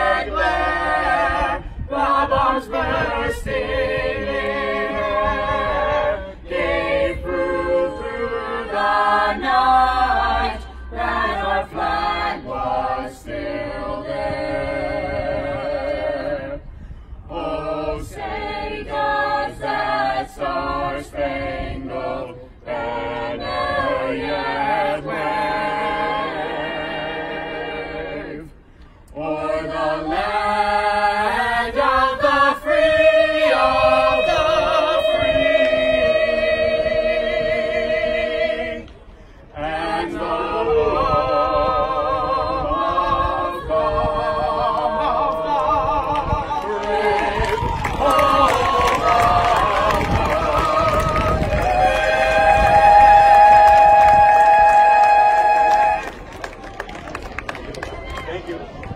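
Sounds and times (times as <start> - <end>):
a cappella choir singing: 0.0 - 56.2.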